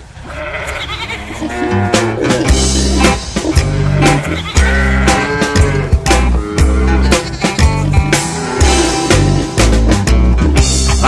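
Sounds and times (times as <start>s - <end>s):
sheep bleating: 0.2s - 8.9s
psychobilly band music: 1.4s - 11.0s.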